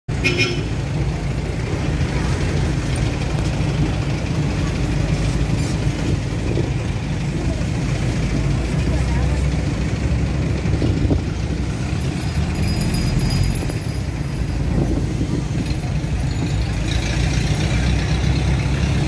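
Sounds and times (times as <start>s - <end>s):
traffic rumble: 0.1s - 19.0s.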